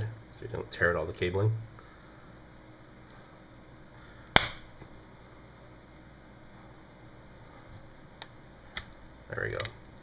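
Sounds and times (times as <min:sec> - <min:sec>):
sharp snap of glass popping free: 0:04.4 - 0:04.7.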